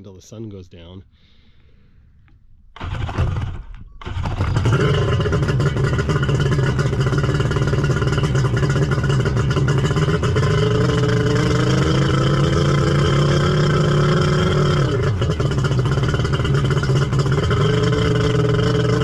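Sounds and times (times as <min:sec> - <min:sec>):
jet ski engine revving: 0:02.8 - 0:19.0.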